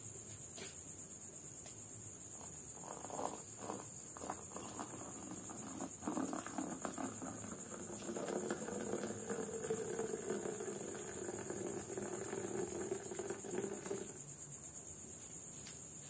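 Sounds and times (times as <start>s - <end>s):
cricket trill: 0.0s - 16.0s
water pouring into mug: 2.8s - 14.1s.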